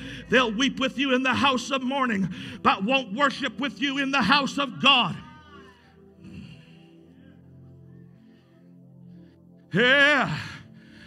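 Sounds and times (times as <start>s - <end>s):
man shouting with echo: 4.2s - 5.9s.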